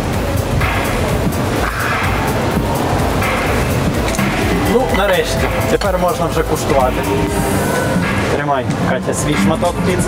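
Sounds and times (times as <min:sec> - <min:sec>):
background music: 0:00.0 - 0:10.0
man talking: 0:04.5 - 0:07.5.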